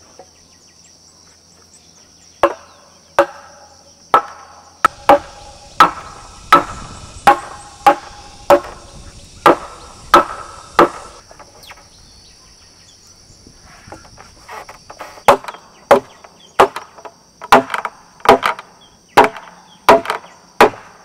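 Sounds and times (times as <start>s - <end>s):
insects chirring: 0.0s - 21.0s
hand tool striking wooden post: 2.4s - 2.6s, 3.2s - 3.5s, 4.1s - 11.2s, 15.0s - 18.6s, 19.2s - 20.9s.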